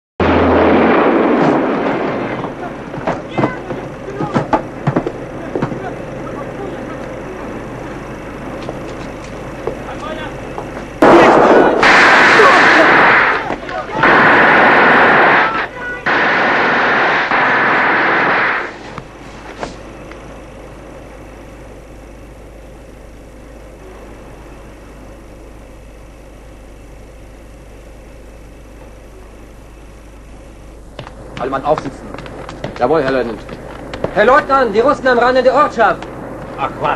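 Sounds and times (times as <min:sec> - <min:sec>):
explosion: 0:00.2 - 0:02.8, 0:11.0 - 0:18.8
low steady hum: 0:00.2 - 0:36.9
crackles and pops: 0:07.9 - 0:20.3, 0:30.9 - 0:36.8
loud battle noise bursts: 0:11.0 - 0:18.8.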